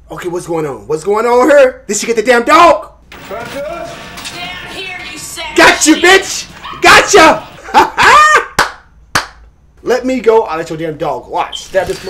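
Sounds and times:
man shouting excitedly: 0:05.4 - 0:08.6
hand claps: 0:08.5 - 0:09.5.

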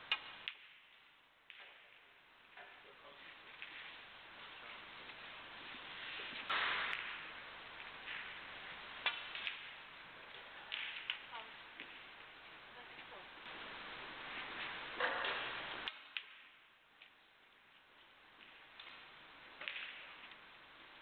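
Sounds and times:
arena background noise: 0:00.0 - 0:21.0
snooker balls clicking: 0:05.0 - 0:12.2, 0:18.4 - 0:20.4.

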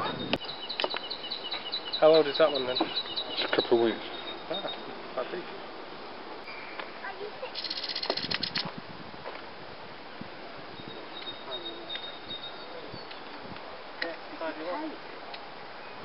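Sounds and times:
faint thin bird calls: 0:06.5 - 0:08.6
rapid rattling bird call: 0:07.4 - 0:08.7.

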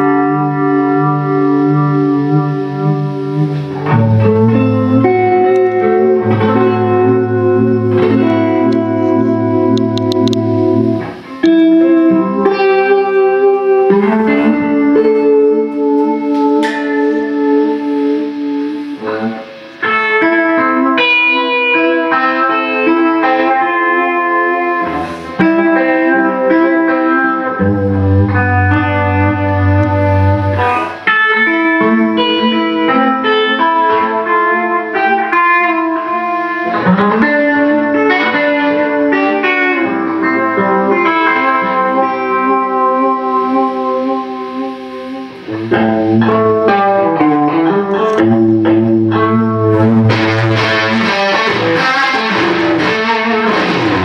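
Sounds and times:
fuzz electric guitar: 0:00.0 - 0:54.0.

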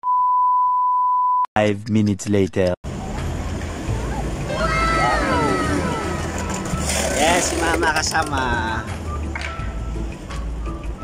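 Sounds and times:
low outdoor rumble: 0:02.9 - 0:08.8.

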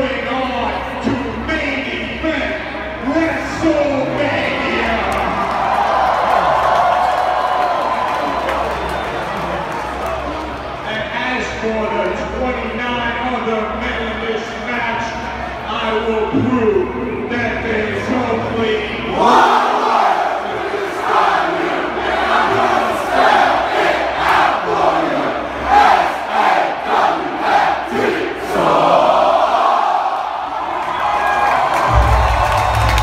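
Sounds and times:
crowd cheering and chanting: 0:02.1 - 0:11.0, 0:17.8 - 0:33.0
music: 0:31.9 - 0:33.0.

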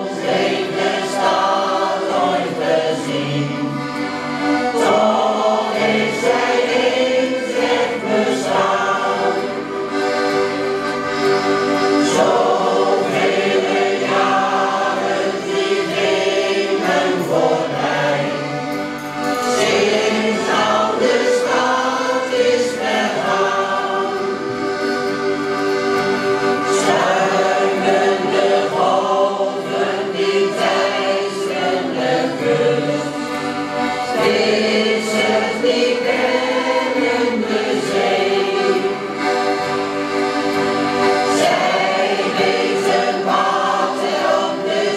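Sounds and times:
accordions playing: 0:00.0 - 0:44.9
mixed choir singing: 0:00.0 - 0:44.9.

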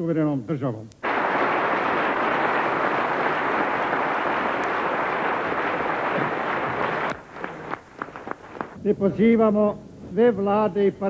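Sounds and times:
crowd applauding: 0:01.0 - 0:08.8.

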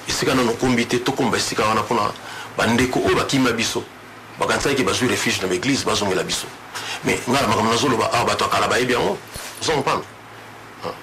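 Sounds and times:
man speaking: 0:00.0 - 0:10.1.

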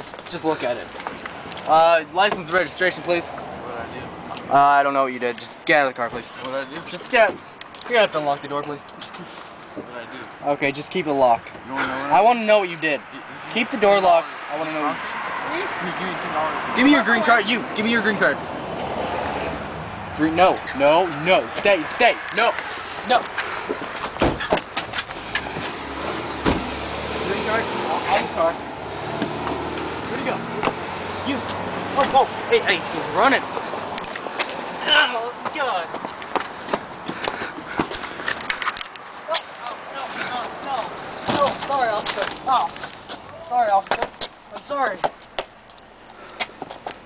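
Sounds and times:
thump against a car: 0:24.0 - 0:25.7, 0:26.4 - 0:26.8.

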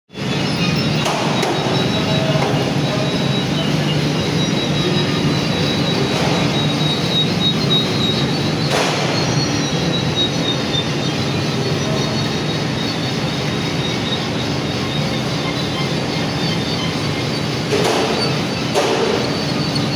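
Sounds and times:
high squealing of belt drive: 0:00.1 - 0:19.9
oven mechanical rumble: 0:00.1 - 0:19.9.

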